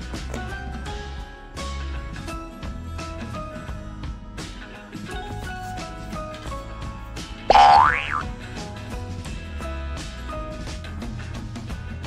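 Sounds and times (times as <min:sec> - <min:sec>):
light background music: 0:00.0 - 0:11.3
cartoon slide whistle: 0:07.5 - 0:08.2.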